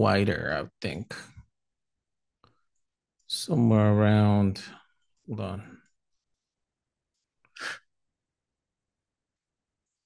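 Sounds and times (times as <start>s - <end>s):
man's sharp breath: 7.5s - 7.9s.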